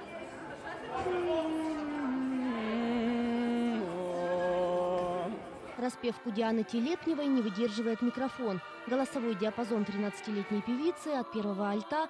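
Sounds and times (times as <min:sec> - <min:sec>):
murmur of many people: 0:00.0 - 0:12.0
person singing vocal scale: 0:01.0 - 0:05.4.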